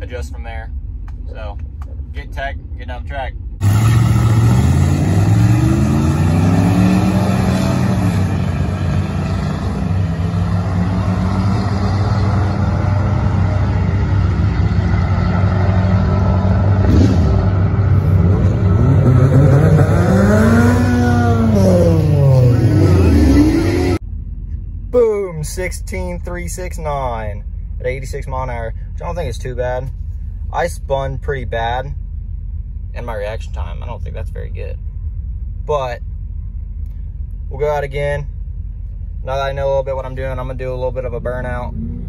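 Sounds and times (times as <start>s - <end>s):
engines accelerating: 3.6s - 24.0s
steady engine drone: 4.3s - 42.0s.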